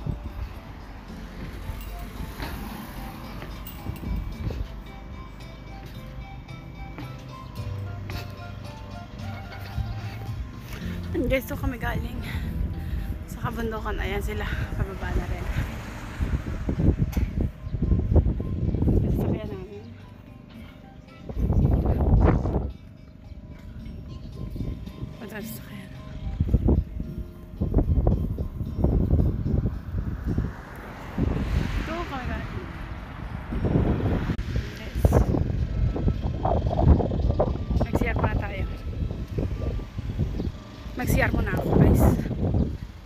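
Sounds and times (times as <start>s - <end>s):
wind buffeting microphone: 0.0s - 5.4s, 9.3s - 20.0s, 21.0s - 43.0s.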